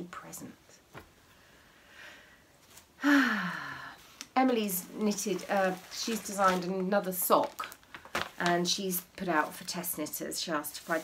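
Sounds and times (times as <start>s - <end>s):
woman sighing: 3.0s - 4.1s.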